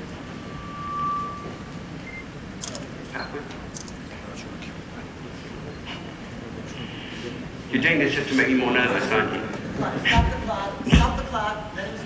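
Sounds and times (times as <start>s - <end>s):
steady high tone: 0.0s - 2.8s
murmur of large hall: 0.0s - 12.0s.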